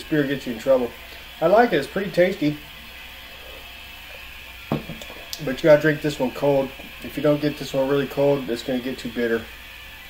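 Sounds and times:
room hum: 0.0s - 10.0s.

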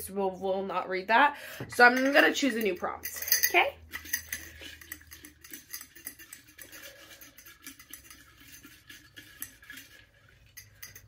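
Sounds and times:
clinks against glass jar: 1.7s - 11.0s.

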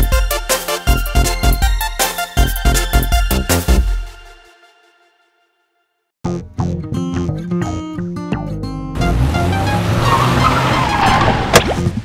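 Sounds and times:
children's song music: 0.0s - 4.4s
cartoon car engine and tyres: 8.4s - 12.0s.

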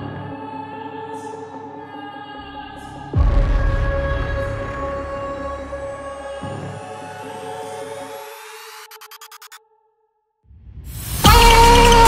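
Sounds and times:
electronic music: 5.7s - 9.6s, 11.1s - 12.0s.

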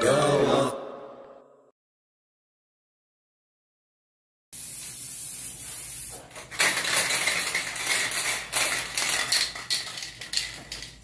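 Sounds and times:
spray paint can hissing: 4.5s - 6.9s.

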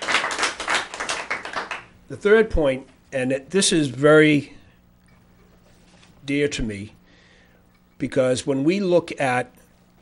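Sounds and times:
audience applause: 0.0s - 1.9s.

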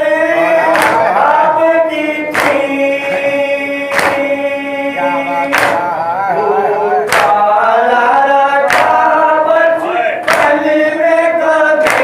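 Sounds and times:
men chanting a lament: 0.0s - 12.0s
hands slapping chests: 0.7s - 1.1s, 2.3s - 2.7s, 3.9s - 4.3s, 5.5s - 5.9s, 7.1s - 7.4s, 8.6s - 9.1s, 10.2s - 10.6s, 11.8s - 12.0s.

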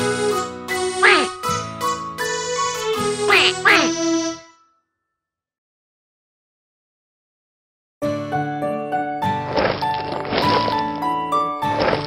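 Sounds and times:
children's song music: 0.0s - 4.5s
duck quacks: 1.0s - 1.4s, 3.3s - 4.0s.

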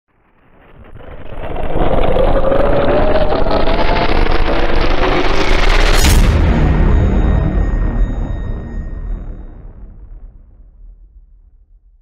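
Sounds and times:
rising whoosh: 0.4s - 10.2s
sudden hit: 3.3s - 12.0s.

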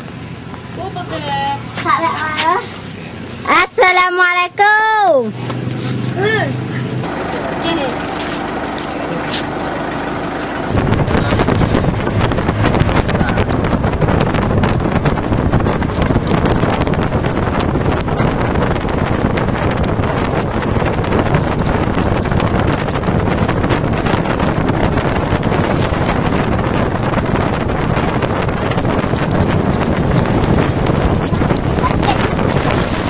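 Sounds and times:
road and engine noise: 0.0s - 33.0s
wind buffeting microphone: 0.0s - 33.0s.

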